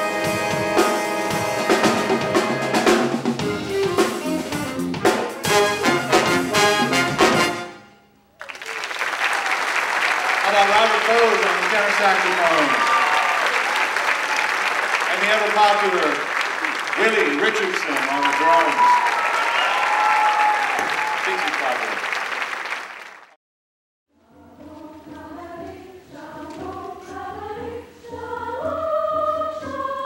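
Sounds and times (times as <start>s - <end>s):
audience applauding: 8.4s - 23.4s
voices calling out and cheering: 10.2s - 21.8s.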